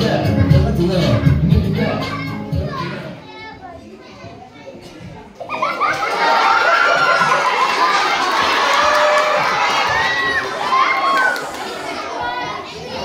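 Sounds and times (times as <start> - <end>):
young children shouting: 5.4 - 13.0.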